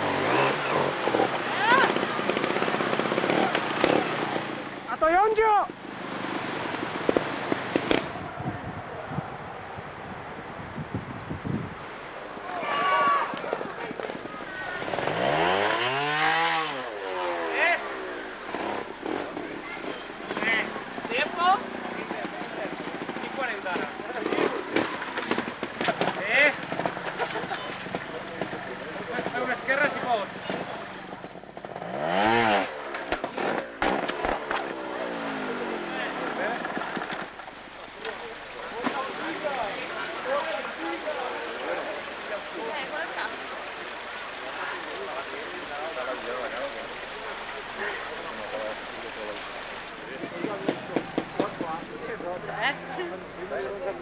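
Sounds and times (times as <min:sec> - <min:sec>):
motorcycle engine revving: 0:00.0 - 0:05.0, 0:05.7 - 0:08.4, 0:13.5 - 0:37.6
spectators' voices: 0:12.1 - 0:31.6, 0:32.6 - 0:54.0.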